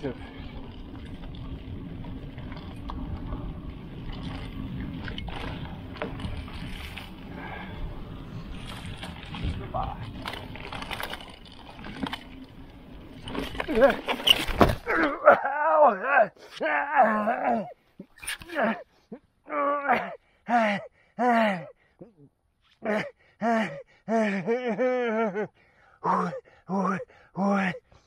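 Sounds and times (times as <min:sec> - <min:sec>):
bike tyres on dirt: 0:00.0 - 0:20.7
wind rumble on microphone: 0:00.2 - 0:12.0
bike crashing: 0:08.3 - 0:15.2
bike knocks and rattles: 0:13.1 - 0:15.1.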